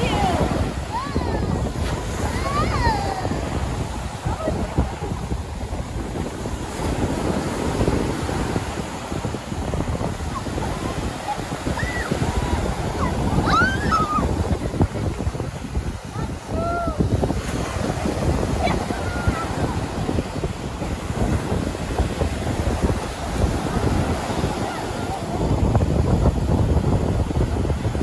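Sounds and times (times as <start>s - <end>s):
ocean surf breaking: 0.0s - 28.0s
wind buffeting microphone: 0.0s - 28.0s.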